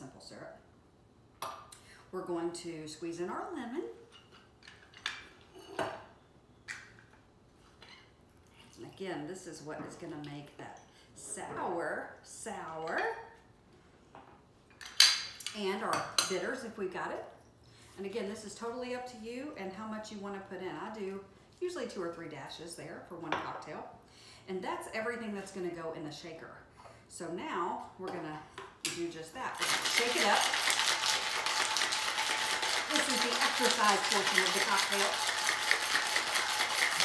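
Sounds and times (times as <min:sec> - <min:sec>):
lemon squeezer clinking on metal shaker: 0:29.6 - 0:37.0.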